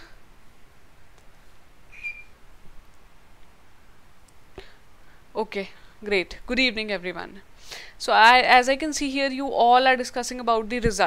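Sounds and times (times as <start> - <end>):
short high-pitched squeak: 1.9 - 2.4.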